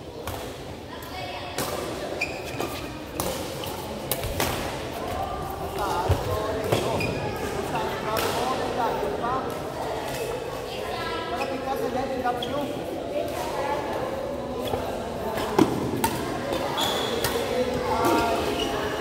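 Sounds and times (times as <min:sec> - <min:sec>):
background voices in a hall: 0:00.0 - 0:19.0.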